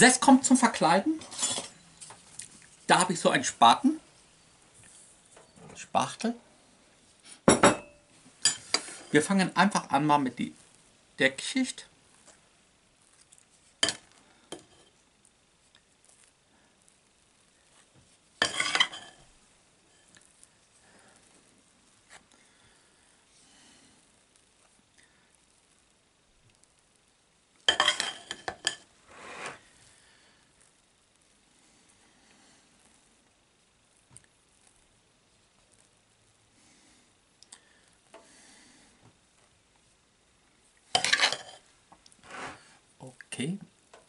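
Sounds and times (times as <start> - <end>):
metal knife clattering and scraping: 1.2 - 1.8, 18.4 - 19.2, 27.7 - 28.8, 41.0 - 41.6.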